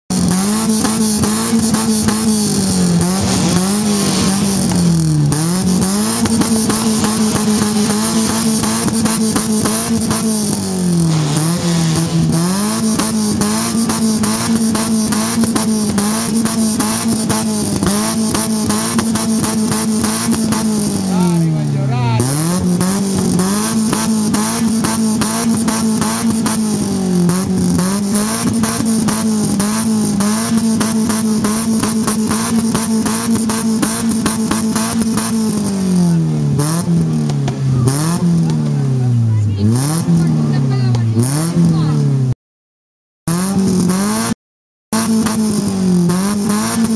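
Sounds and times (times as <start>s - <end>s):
car engine revving: 0.1s - 42.4s, 43.3s - 46.9s.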